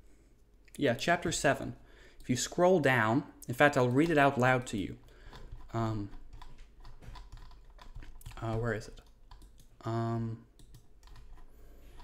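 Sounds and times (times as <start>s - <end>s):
keyboard keys clicking: 5.3s - 9.7s, 10.6s - 12.0s.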